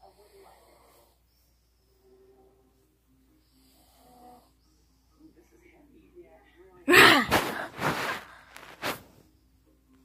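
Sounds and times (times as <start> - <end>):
person snoring faintly: 0.0 - 1.3.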